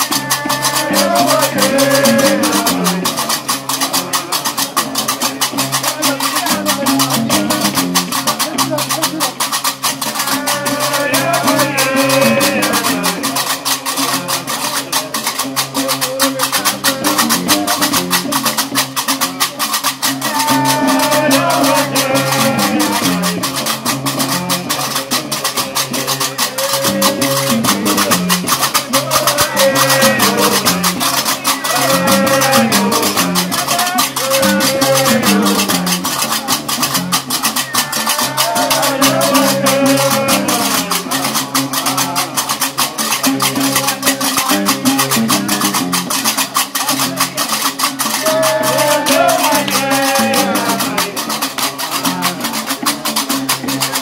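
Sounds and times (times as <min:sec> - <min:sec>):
men singing: 0:00.0 - 0:08.9, 0:09.5 - 0:18.7, 0:19.8 - 0:45.8, 0:47.4 - 0:54.0
bass lute plucking a low riff: 0:00.0 - 0:48.2, 0:48.8 - 0:54.0
iron castanets clattering: 0:00.0 - 0:54.0.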